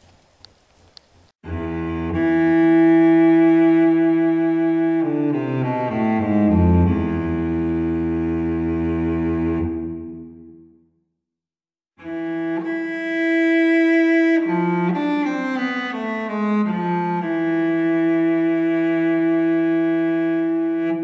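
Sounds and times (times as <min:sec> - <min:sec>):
solo cello playing: 0:01.4 - 0:10.6, 0:12.0 - 0:21.0.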